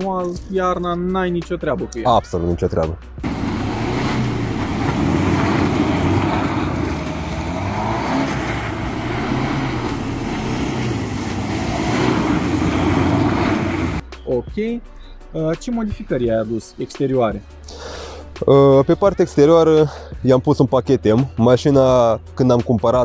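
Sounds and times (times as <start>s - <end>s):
diesel engine revving: 3.2s - 14.0s
tyres hissing on snow: 3.2s - 14.0s.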